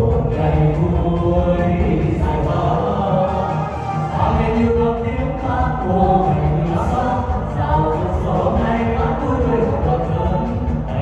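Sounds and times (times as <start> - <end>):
mixed choir singing: 0.0 - 11.0
soloists singing into microphones: 0.0 - 11.0.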